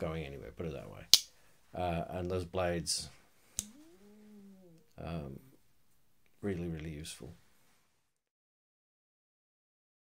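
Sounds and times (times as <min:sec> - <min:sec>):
faint rising and falling tone: 0:03.6 - 0:05.6.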